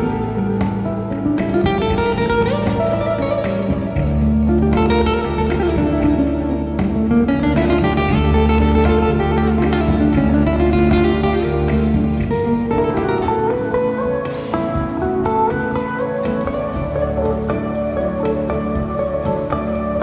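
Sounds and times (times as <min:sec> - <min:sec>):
flamenco guitar music: 0:00.0 - 0:20.0
sustained bass notes: 0:00.0 - 0:20.0.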